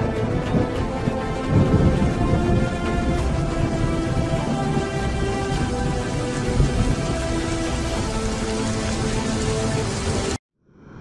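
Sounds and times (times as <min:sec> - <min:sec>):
low thunder rumbling: 0:00.0 - 0:10.4
music of slow held notes: 0:00.0 - 0:10.4
steady rain: 0:00.0 - 0:10.4.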